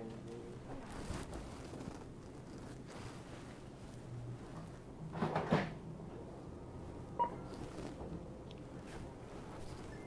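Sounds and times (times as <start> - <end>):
items rustling and knocking: 0.6 - 6.3.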